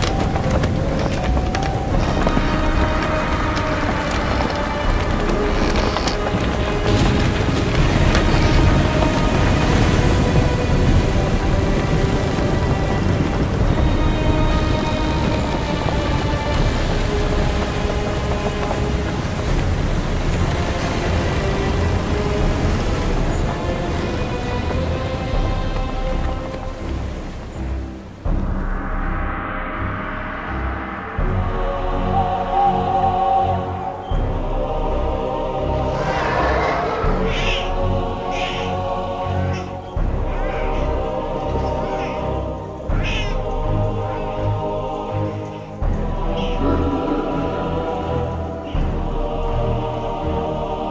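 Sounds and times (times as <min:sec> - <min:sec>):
background music: 0:00.0 - 0:50.9
steady rain: 0:00.0 - 0:50.9
low thunder rumbling: 0:28.3 - 0:38.8, 0:45.9 - 0:49.6.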